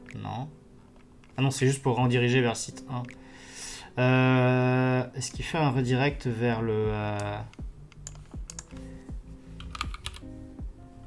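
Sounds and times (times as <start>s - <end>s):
computer keyboard keystrokes: 7.2s - 8.8s, 9.6s - 10.3s.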